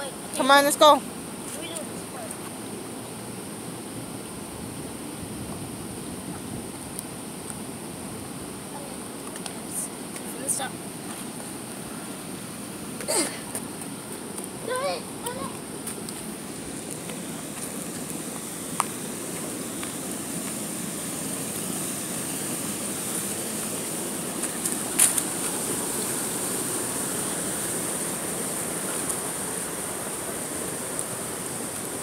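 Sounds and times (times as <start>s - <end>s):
stream water flowing: 0.0s - 32.0s.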